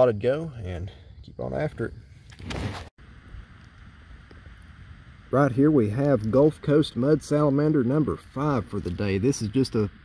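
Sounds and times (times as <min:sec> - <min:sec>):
light hiss: 0:00.9 - 0:10.0.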